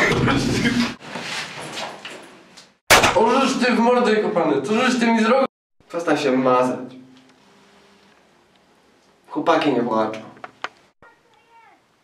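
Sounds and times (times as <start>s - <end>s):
pistol shot: 2.9s - 3.2s.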